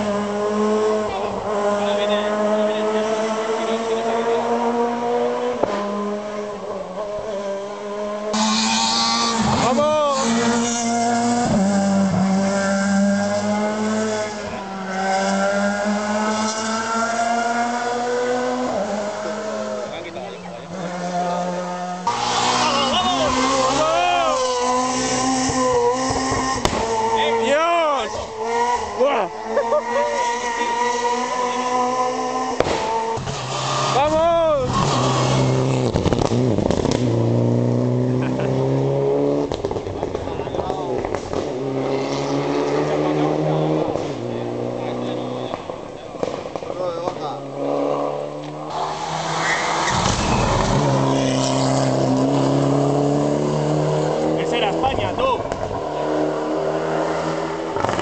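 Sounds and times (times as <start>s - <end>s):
rally car engine revving: 0.0s - 58.0s.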